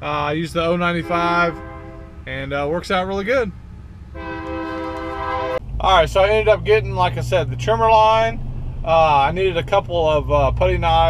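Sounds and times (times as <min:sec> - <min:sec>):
horn blowing steady note: 0:00.8 - 0:02.3, 0:04.1 - 0:05.6.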